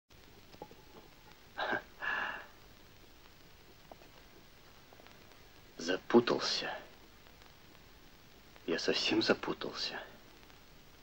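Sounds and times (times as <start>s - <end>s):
person gasping: 1.6s - 2.5s.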